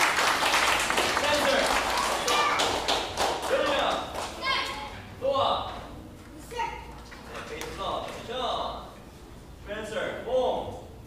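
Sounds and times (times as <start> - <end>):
voices in large room: 0.0 - 11.0.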